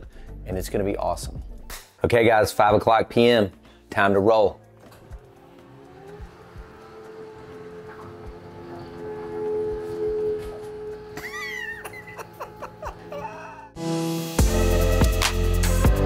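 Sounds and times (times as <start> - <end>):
stairlift motor hum: 4.7 - 13.8.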